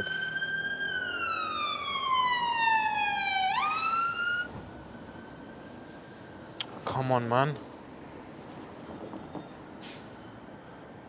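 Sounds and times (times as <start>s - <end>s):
emergency vehicle siren wailing: 0.0s - 6.4s.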